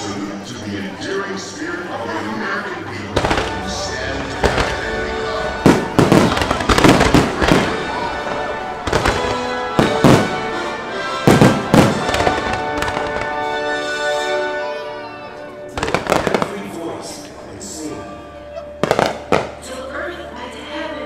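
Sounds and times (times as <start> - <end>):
music playing: 0.0 - 21.0
fireworks banging: 3.1 - 13.6, 15.8 - 16.8, 18.8 - 19.6.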